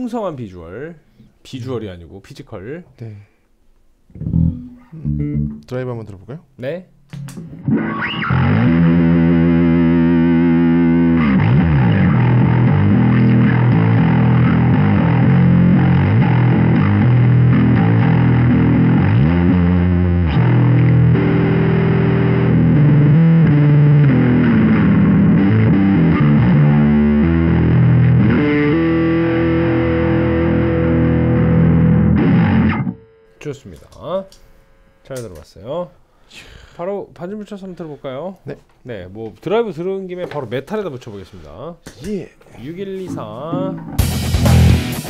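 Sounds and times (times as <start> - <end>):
distorted electric bass riff: 4.1 - 5.7, 7.2 - 33.3, 43.1 - 45.0.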